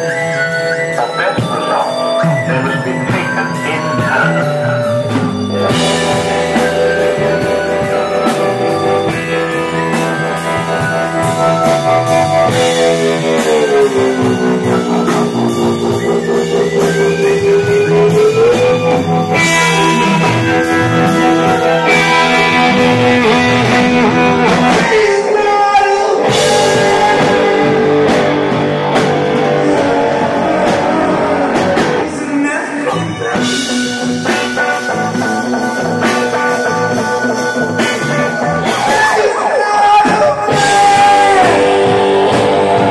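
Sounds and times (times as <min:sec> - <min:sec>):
drums: 0:00.0 - 0:42.9
electric guitars: 0:00.0 - 0:42.9.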